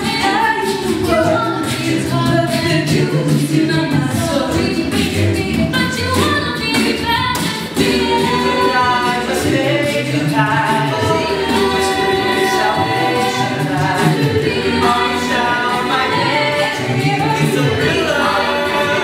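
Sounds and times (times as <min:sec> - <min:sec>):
a cappella group singing in harmony: 0:00.0 - 0:19.0
beatboxed percussion: 0:00.0 - 0:19.0
sung bass line: 0:00.0 - 0:19.0.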